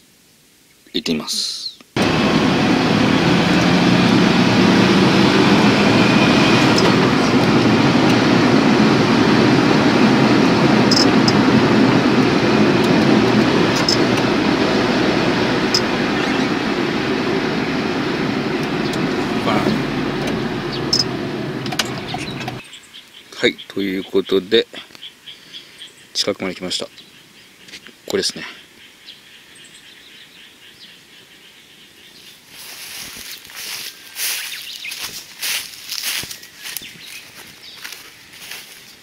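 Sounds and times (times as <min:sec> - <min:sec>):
car cabin road and engine noise: 0:02.0 - 0:22.6.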